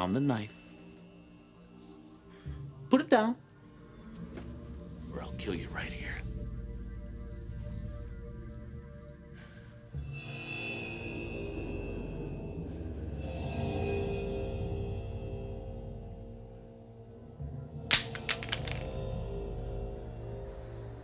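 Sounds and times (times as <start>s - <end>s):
suspenseful score music: 0.0s - 21.0s
clatter of sharp cracks: 17.9s - 19.1s.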